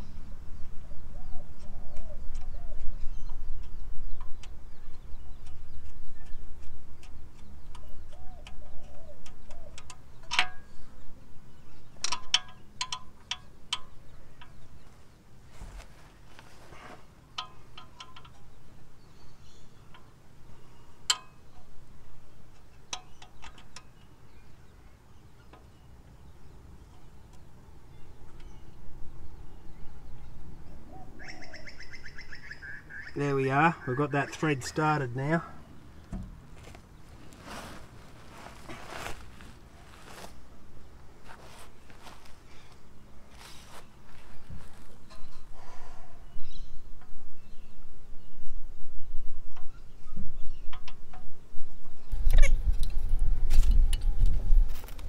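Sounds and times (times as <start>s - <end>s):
faint bird calls: 0.0s - 11.9s, 23.0s - 50.9s
light metallic clicks and taps: 1.6s - 10.6s, 12.0s - 14.6s, 17.3s - 18.6s, 22.5s - 24.0s.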